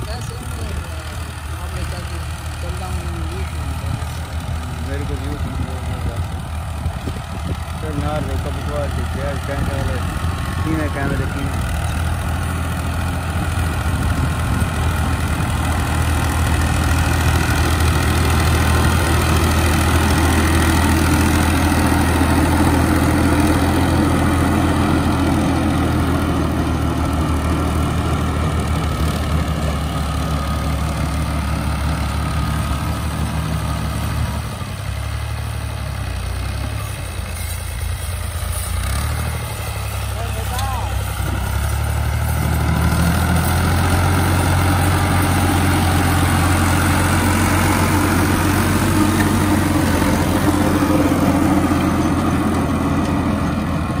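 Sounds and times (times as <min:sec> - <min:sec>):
rotavator churning soil: 0:00.0 - 0:34.4, 0:36.2 - 0:54.0
tractor diesel engine under load: 0:00.0 - 0:54.0.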